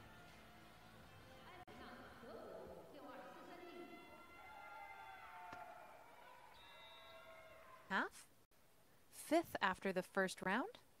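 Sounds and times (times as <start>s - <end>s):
faint background music: 0.0s - 6.3s.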